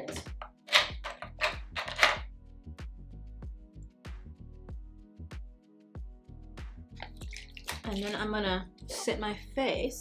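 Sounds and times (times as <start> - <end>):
woman speaking: 7.8 - 10.0.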